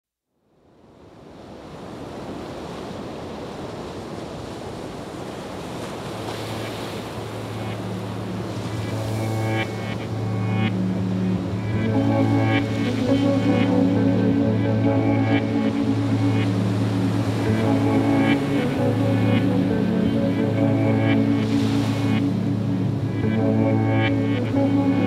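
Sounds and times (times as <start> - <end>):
background music: 7.3 - 25.0.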